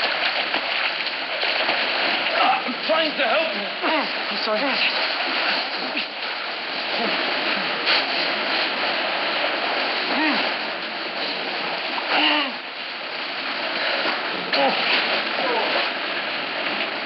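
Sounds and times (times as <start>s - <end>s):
rushing water: 0.0s - 17.0s.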